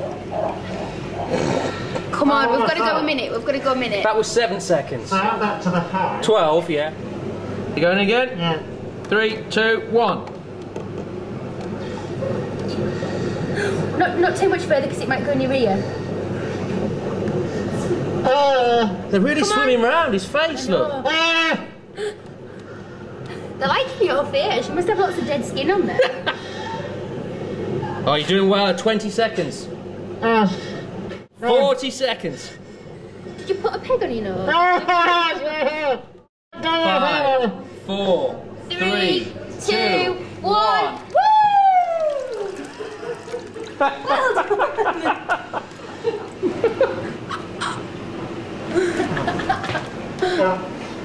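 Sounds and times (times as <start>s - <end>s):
low steady hum: 36.6s - 51.0s
rushing water in a tank: 40.6s - 44.6s.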